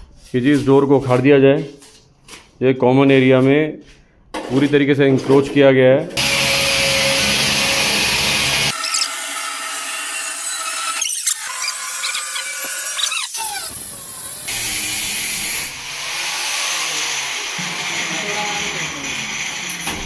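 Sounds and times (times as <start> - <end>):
angle grinder cutting metal: 6.2 - 20.0.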